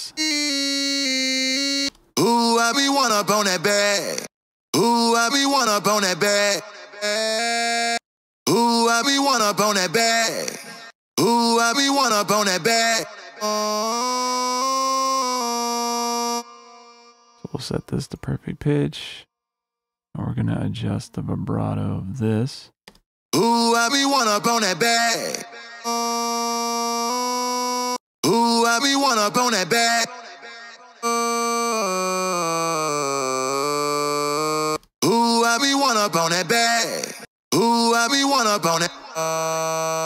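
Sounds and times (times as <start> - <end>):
pitch-corrected vocal ooh: 0.0 - 9.2, 23.4 - 40.0
pitch-corrected sung vocal note: 23.4 - 35.8.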